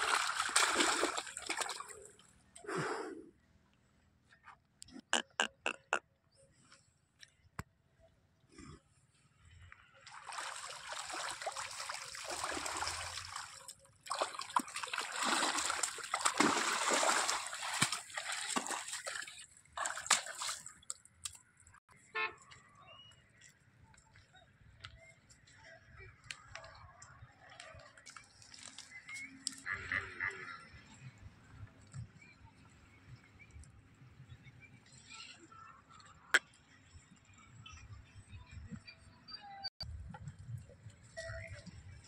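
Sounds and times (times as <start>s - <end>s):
mud sloshing and splashing: 0.0s - 2.2s, 10.0s - 20.9s.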